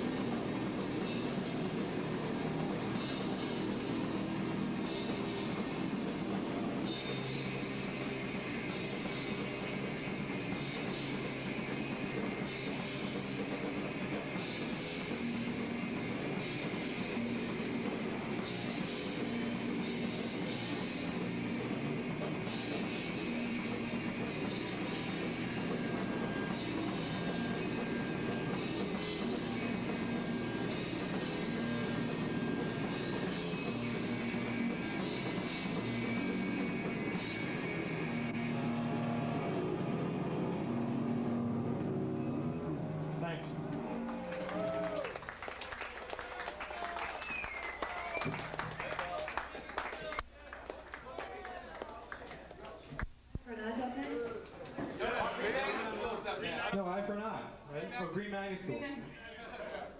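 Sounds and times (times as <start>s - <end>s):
live rock band playing: 0.0s - 44.9s.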